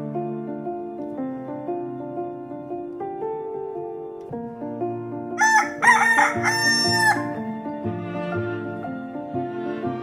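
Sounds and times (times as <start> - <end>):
soft background music: 0.0 - 10.0
rooster crowing: 5.4 - 7.4.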